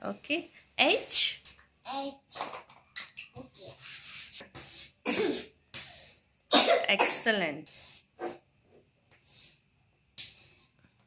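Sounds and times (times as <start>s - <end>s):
chalk scratching on chalkboard: 3.4s - 6.2s, 7.6s - 8.2s, 9.1s - 9.6s, 10.2s - 10.8s
cough-like voice burst: 5.0s - 5.5s, 6.5s - 7.2s.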